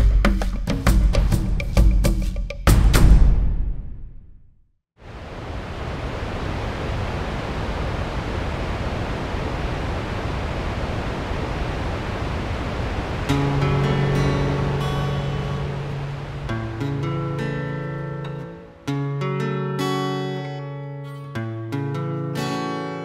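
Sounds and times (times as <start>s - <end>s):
water rushing: 5.0s - 18.9s
held chords: 13.3s - 19.5s
acoustic guitar: 13.3s - 23.0s.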